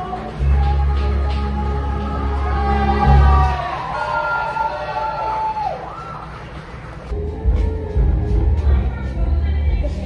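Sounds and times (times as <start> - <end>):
music with heavy bass: 7.1 - 10.0.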